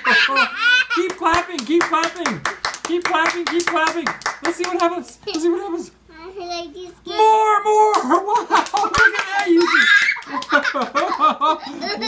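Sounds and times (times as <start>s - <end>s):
young child laughing: 0.0s - 1.2s, 7.9s - 12.0s
hand claps: 1.0s - 5.5s, 7.9s - 11.3s.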